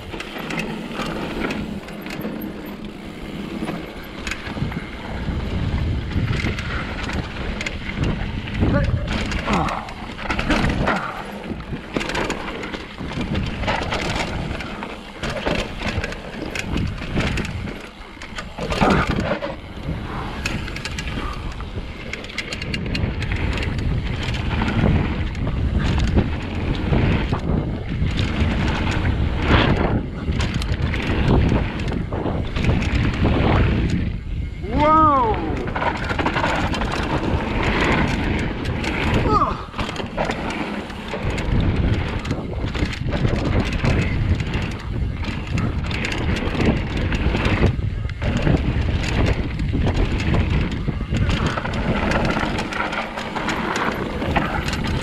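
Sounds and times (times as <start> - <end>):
bike frame and chain rattling: 0.0 - 55.0
wind rumbling on microphone: 0.0 - 55.0.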